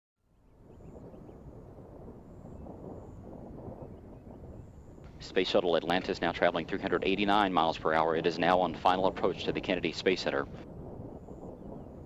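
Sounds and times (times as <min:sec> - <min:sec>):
wind rumble: 0:00.2 - 0:12.0.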